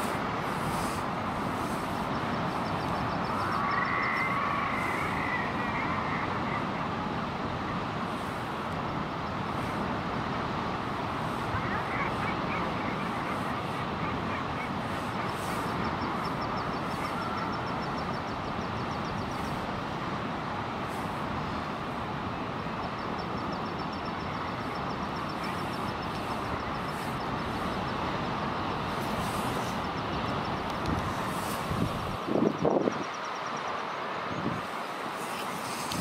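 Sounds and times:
sea: 0:00.0 - 0:36.0
wind: 0:00.0 - 0:36.0.

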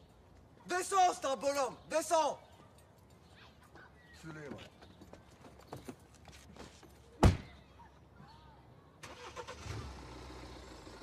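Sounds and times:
faint footsteps: 0:02.9 - 0:07.2.

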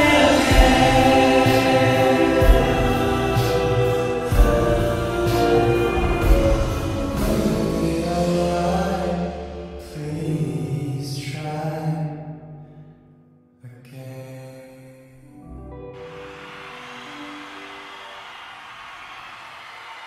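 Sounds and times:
live concert music: 0:00.0 - 0:10.5, 0:15.8 - 0:20.0
steady rush of sound: 0:16.0 - 0:20.0.

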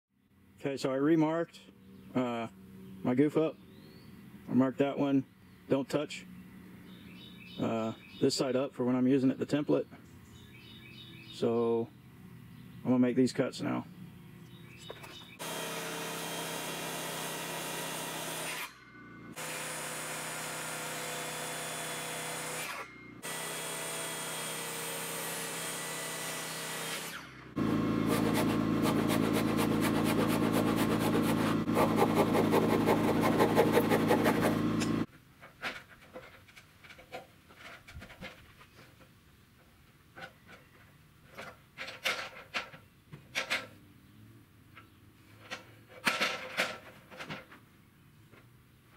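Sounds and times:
electric saw cutting wood: 0:15.4 - 0:35.1.

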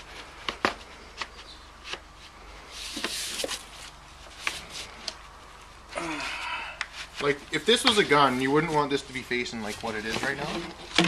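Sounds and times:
scraping rustle: 0:00.0 - 0:05.8, 0:06.9 - 0:11.0.

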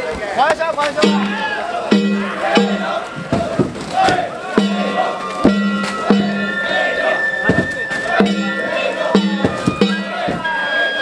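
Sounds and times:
crowd voices: 0:00.0 - 0:11.0
drum strikes: 0:01.0 - 0:10.8
high held flute note: 0:05.0 - 0:11.0.

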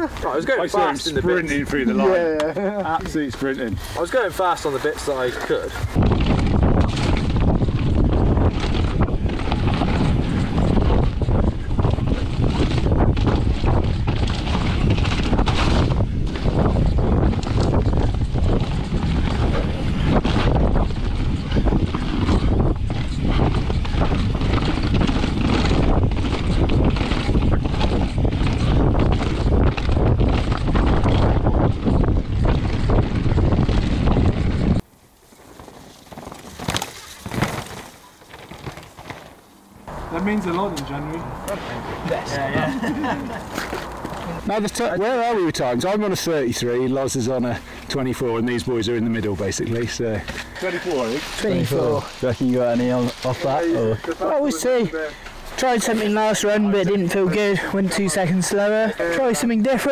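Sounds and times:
faint outdoor sound: 0:00.0 - 0:59.9
tyres on dirt: 0:00.0 - 0:59.9
mountain bike rattling and knocking: 0:02.4 - 0:41.0, 0:42.3 - 0:59.9
wind rush on microphone: 0:04.9 - 0:34.9.

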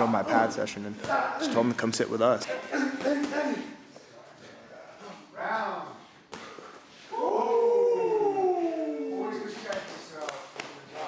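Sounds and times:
howl-like vocal cry: 0:07.1 - 0:09.3.

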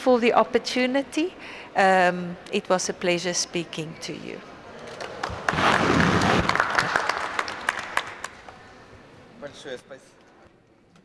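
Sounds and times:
audience applauding: 0:04.9 - 0:08.6.

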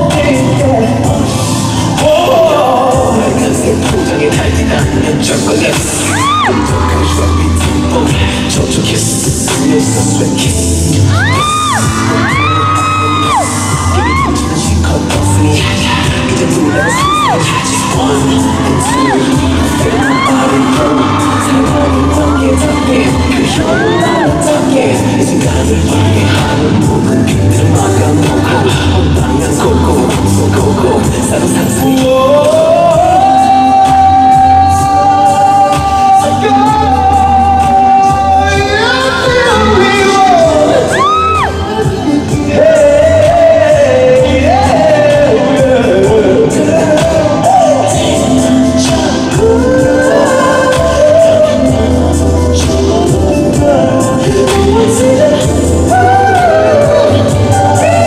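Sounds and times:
fans screaming: 0:00.0 - 0:09.1, 0:10.9 - 0:26.9, 0:31.8 - 0:52.7
live pop music with heavy beat: 0:00.0 - 0:58.0
man singing a long high note: 0:00.0 - 0:58.0.

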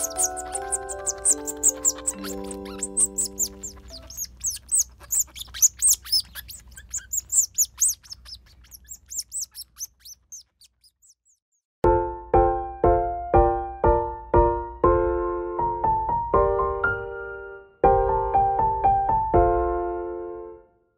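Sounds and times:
soft music with held notes: 0:00.0 - 0:04.3, 0:11.8 - 0:20.9
otter pups squeaking: 0:00.0 - 0:11.8.

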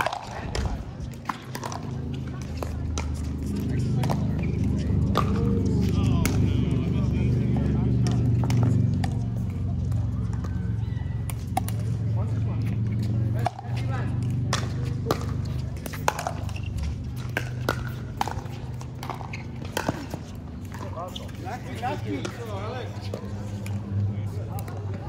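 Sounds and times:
paddles hitting plastic ball: 0:00.0 - 0:06.7, 0:07.5 - 0:12.1, 0:13.2 - 0:25.0.

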